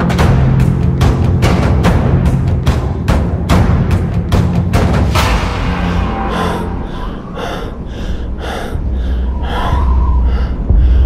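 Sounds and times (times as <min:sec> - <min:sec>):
low bass drone: 0:03.6 - 0:11.0
quick heavy breathing: 0:06.2 - 0:11.0.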